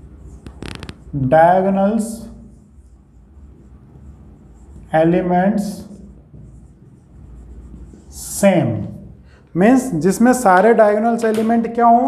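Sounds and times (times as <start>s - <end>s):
marker pen writing on whiteboard: 0.0s - 12.0s
steady low hum: 0.0s - 12.0s.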